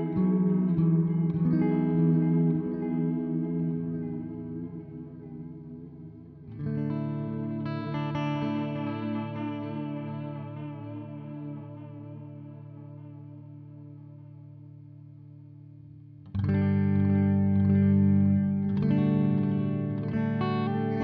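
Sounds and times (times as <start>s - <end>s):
electric guitar chords with delay: 0.0s - 21.0s.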